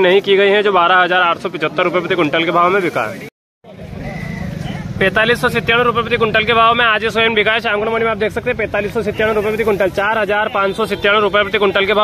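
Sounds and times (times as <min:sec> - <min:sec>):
vehicle engine rumbling: 0:03.7 - 0:12.0
man's voice: 0:05.0 - 0:12.0.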